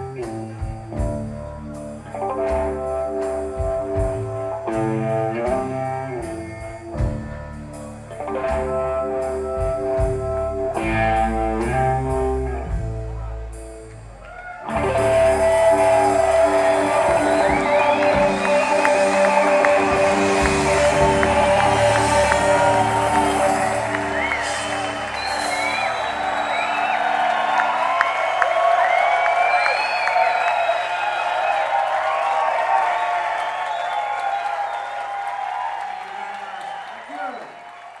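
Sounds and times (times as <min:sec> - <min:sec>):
audience cheering and applause: 0:13.9 - 0:38.0
rock band chord ringing: 0:14.7 - 0:28.3.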